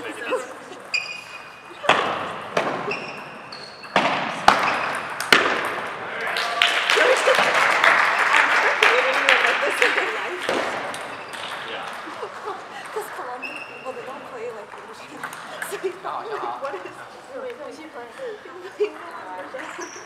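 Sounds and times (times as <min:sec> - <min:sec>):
table tennis balls clicking: 0:01.8 - 0:06.0, 0:07.0 - 0:16.0
voices: 0:06.0 - 0:20.0.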